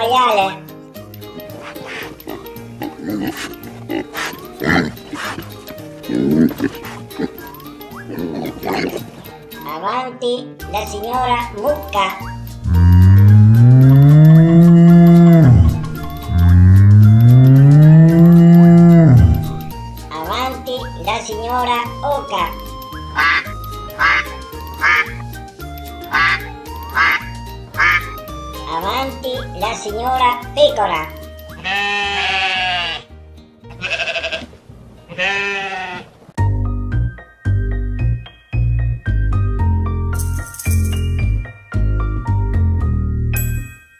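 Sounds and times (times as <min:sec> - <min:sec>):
children's background music: 0:00.0 - 0:34.4, 0:36.4 - 0:43.9
cow mooing: 0:12.6 - 0:19.8
sheep bleating: 0:12.7 - 0:19.7, 0:31.5 - 0:33.1, 0:33.7 - 0:34.5, 0:35.1 - 0:36.2.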